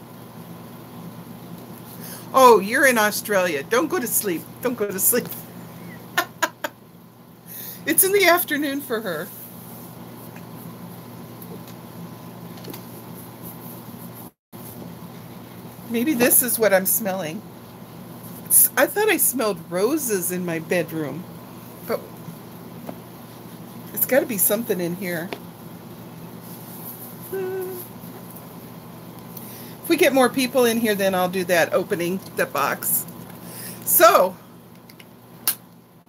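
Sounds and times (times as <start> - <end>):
woman humming: 27.2 - 28.0.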